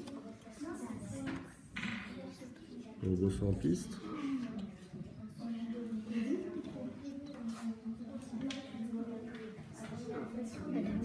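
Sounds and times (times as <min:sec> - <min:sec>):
children and adult talking: 0:00.0 - 0:11.0.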